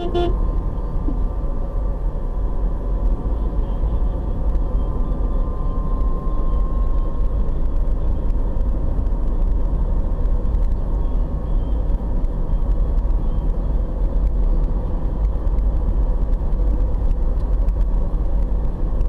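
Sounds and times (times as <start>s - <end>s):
road and engine rumble inside car: 0.0s - 19.0s.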